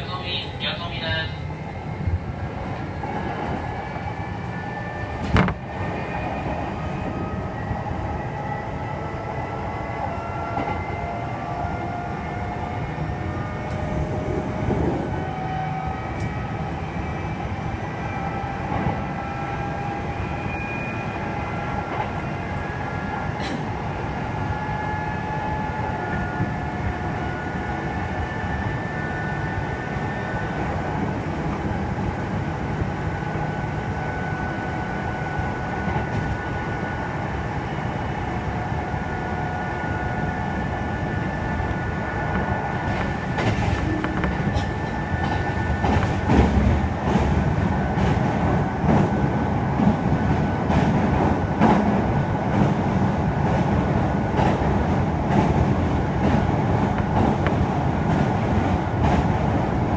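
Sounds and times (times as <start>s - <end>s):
wheels rumbling on rails: 0.0s - 59.9s.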